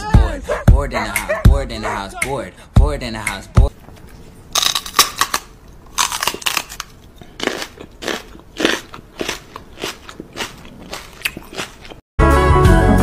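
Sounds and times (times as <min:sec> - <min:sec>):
crisp chewing crunches: 0:03.7 - 0:12.0.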